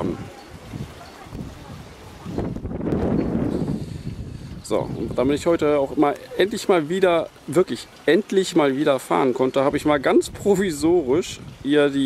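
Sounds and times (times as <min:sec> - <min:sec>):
wind buffeting microphone: 0:00.0 - 0:08.0, 0:09.6 - 0:12.0.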